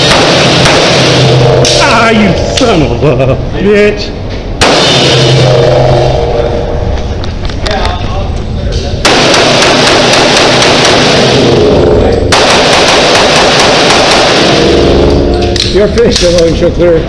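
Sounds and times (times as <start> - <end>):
pistol shots echoing indoors: 0.0 - 1.8, 4.6 - 5.8, 9.0 - 16.4.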